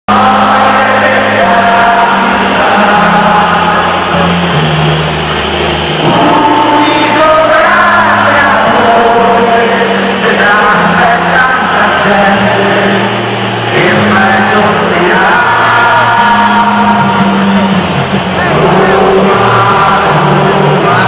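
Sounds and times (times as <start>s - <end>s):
choir-like mass of voices singing: 0.1s - 21.0s.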